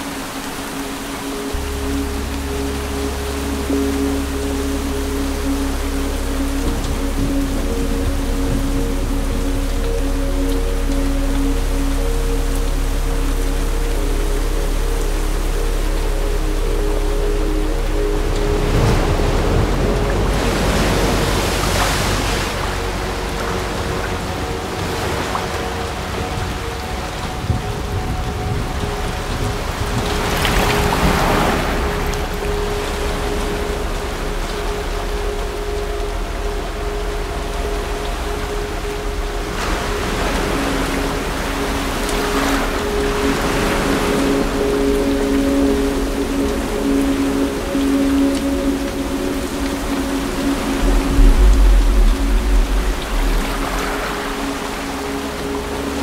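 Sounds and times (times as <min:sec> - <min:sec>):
heavy rain pouring: 0:00.0 - 0:56.0
sustained orchestral notes: 0:00.0 - 0:56.0
deep low rumble: 0:01.4 - 0:56.0.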